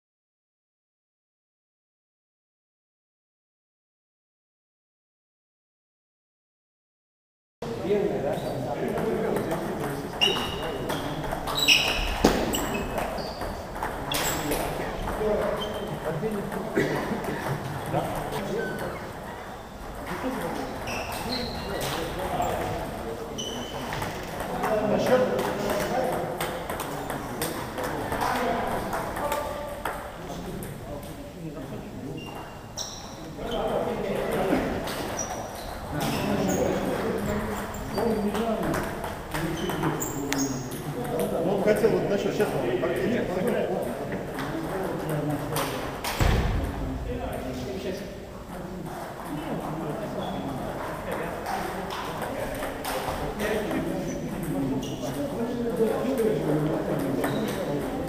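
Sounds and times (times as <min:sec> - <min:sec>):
people talking: 0:07.6 - 0:32.5, 0:33.2 - 0:58.0
murmur of voices: 0:07.6 - 0:58.0
table tennis balls clicking: 0:08.9 - 0:18.9, 0:23.6 - 0:31.2.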